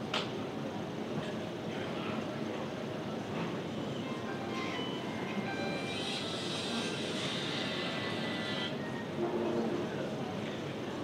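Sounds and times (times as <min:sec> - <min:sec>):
faint indistinct voices: 0:00.6 - 0:11.0.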